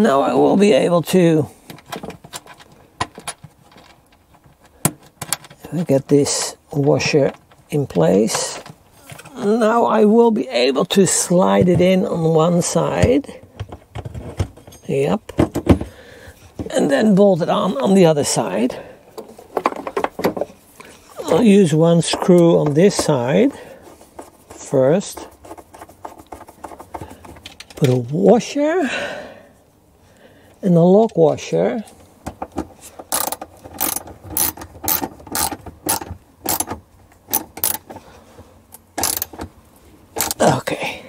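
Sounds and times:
ratchet wrench clicking: 33.1 - 36.7, 37.3 - 37.9, 39.0 - 39.4, 40.2 - 40.4.

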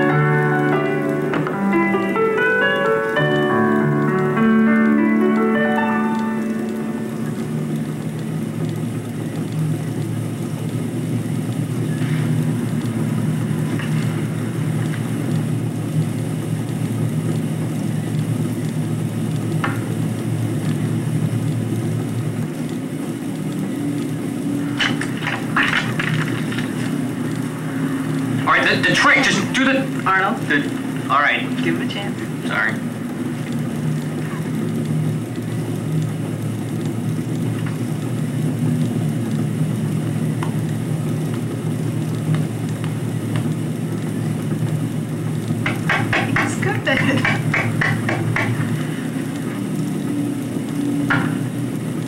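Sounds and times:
piano phrase: 0.0 - 36.4
low rumble and hum: 3.1 - 52.0
voices: 28.4 - 33.0, 46.1 - 48.6.

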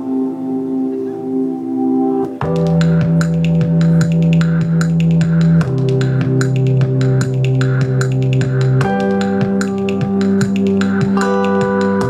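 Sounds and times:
percussive beat: 2.4 - 12.0.

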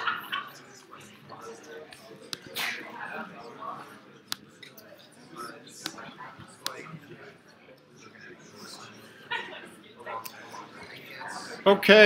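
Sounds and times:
faint voices talking quietly: 0.0 - 12.0.

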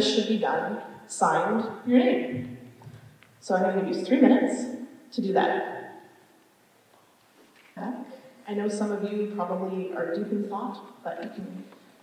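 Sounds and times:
voice: 0.0 - 2.5, 3.4 - 5.8, 7.8 - 11.7.

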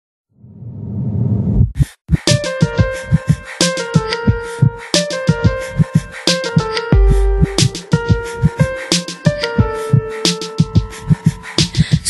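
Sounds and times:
song beat: 2.1 - 12.0.

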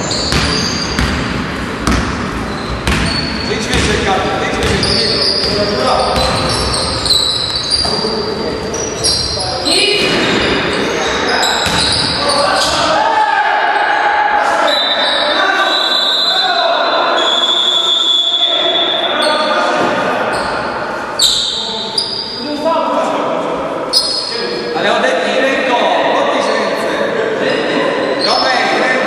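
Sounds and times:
basketball bouncing on court: 0.0 - 7.9, 11.6 - 12.8
players calling out: 2.1 - 22.5.

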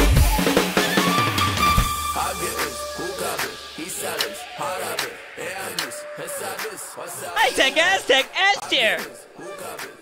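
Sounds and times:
electronic dance track: 0.0 - 10.0.

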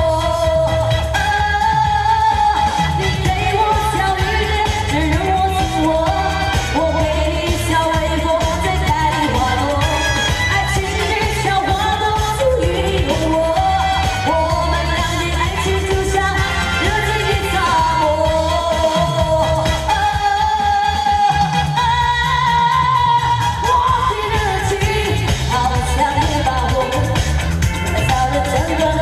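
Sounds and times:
amplified backing music with beat: 0.0 - 29.0
woman singing into a microphone: 0.0 - 29.0.

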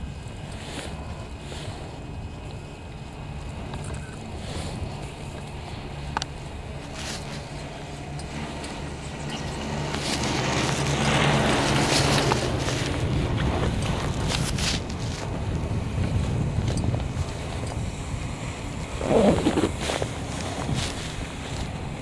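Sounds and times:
chair rumbling over sheave wheels: 0.0 - 2.5, 3.3 - 17.6, 18.8 - 22.0
haul rope humming: 0.0 - 22.0
wind on microphone: 0.0 - 22.0.

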